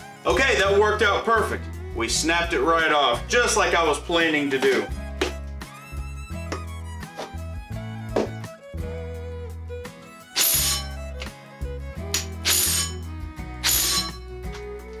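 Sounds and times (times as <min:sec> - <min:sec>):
background music with bass line: 0:00.0 - 0:15.0
loud rasping bursts: 0:10.4 - 0:11.0, 0:12.2 - 0:14.2.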